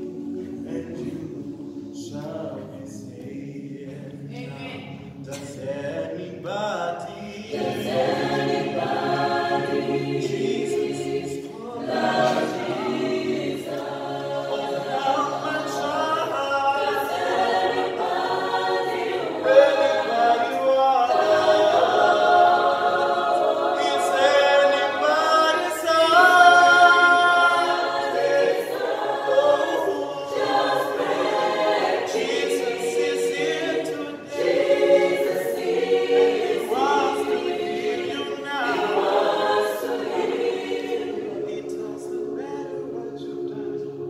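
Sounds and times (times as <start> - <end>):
mixed choir singing a cappella: 0.0 - 44.0.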